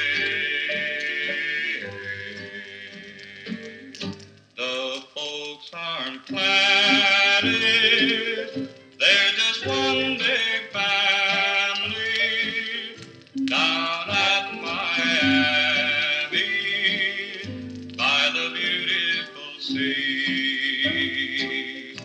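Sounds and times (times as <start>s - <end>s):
rockabilly record playing: 0.0s - 22.0s.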